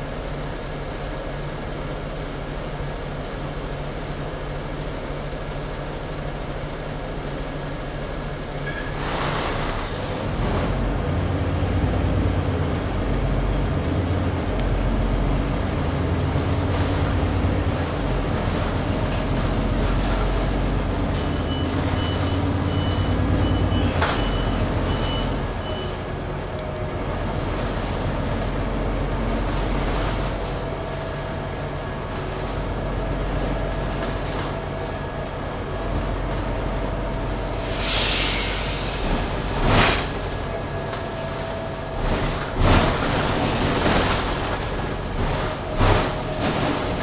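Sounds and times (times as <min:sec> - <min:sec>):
bus diesel engine: 0:00.0 - 0:47.0
air brake hiss: 0:37.6 - 0:39.1.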